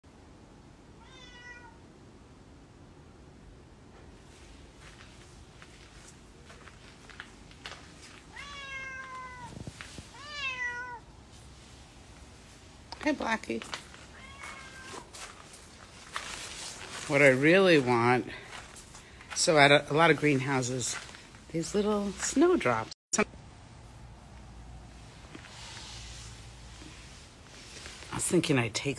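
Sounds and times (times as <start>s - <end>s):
cat meowing: 1.0s - 1.8s, 8.2s - 11.1s, 14.0s - 15.2s.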